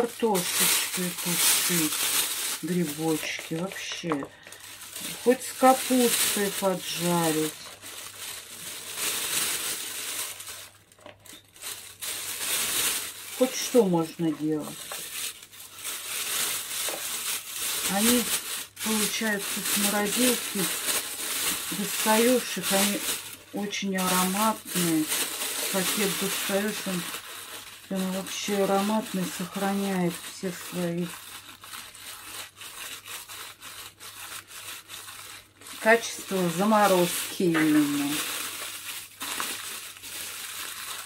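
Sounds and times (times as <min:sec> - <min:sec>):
plastic bag rustling: 0:00.0 - 0:41.0
mushroom pieces dropped into bag: 0:37.0 - 0:38.6.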